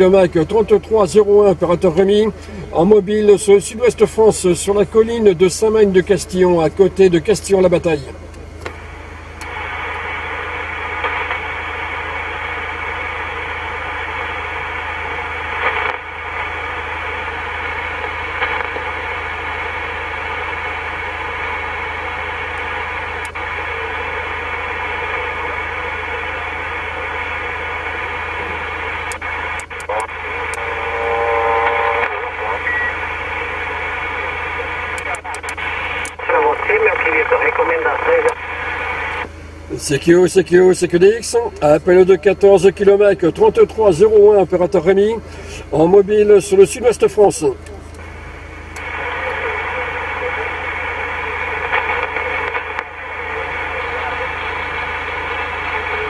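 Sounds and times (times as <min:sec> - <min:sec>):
radio static hiss: 0:00.0 - 0:56.0
garbled radio voices: 0:15.5 - 0:48.1, 0:48.7 - 0:56.0.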